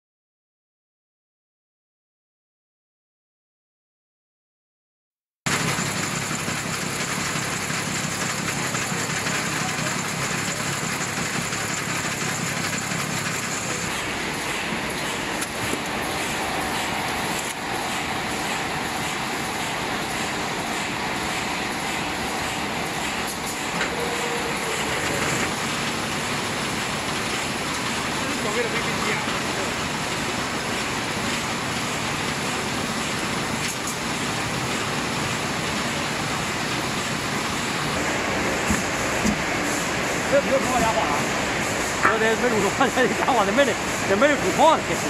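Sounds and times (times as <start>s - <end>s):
machine running steadily: 5.5s - 45.0s.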